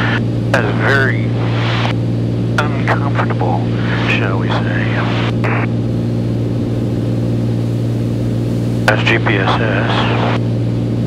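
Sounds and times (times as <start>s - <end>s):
propeller plane engine droning: 0.0s - 11.0s.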